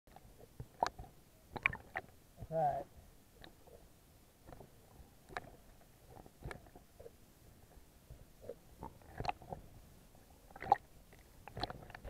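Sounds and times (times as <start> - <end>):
water gurgling and slapping: 0.1 - 2.5, 8.1 - 12.0.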